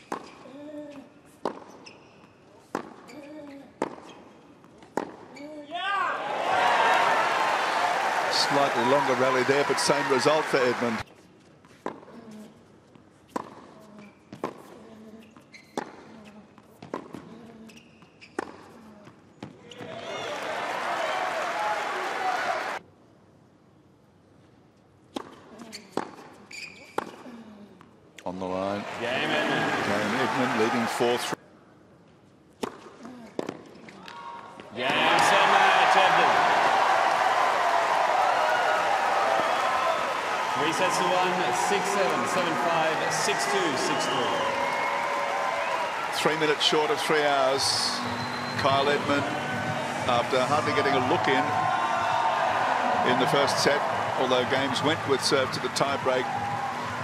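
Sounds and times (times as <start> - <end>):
crowd applauding and cheering: 6.2 - 11.0, 20.0 - 22.8, 28.8 - 31.4, 34.8 - 57.0.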